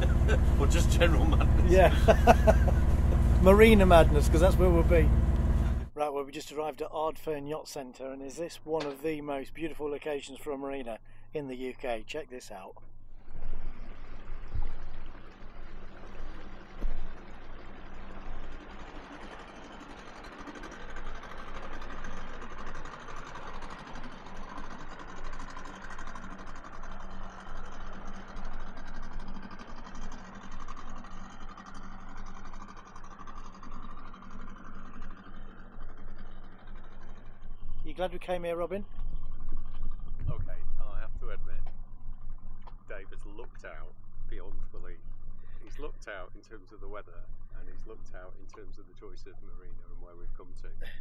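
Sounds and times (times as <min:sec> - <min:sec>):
boat engine humming: 0:00.0 - 0:51.0.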